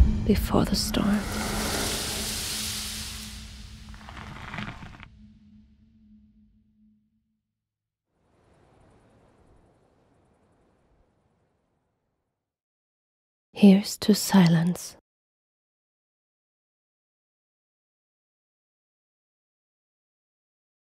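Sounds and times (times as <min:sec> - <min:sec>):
whoosh of rushing air: 0:00.9 - 0:04.2
faint hiss: 0:00.9 - 0:05.0.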